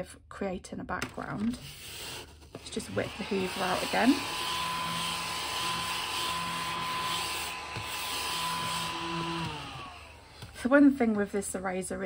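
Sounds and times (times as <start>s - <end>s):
mini vacuum high whine: 2.6s - 10.6s
motor spinning down: 2.7s - 10.6s.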